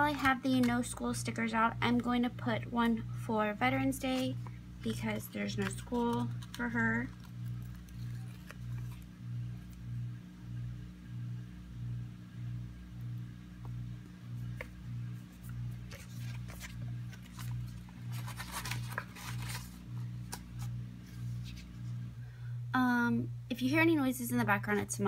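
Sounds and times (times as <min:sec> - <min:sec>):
washing machine humming: 0:00.0 - 0:25.0
paper rustling: 0:04.0 - 0:09.1, 0:14.5 - 0:21.9.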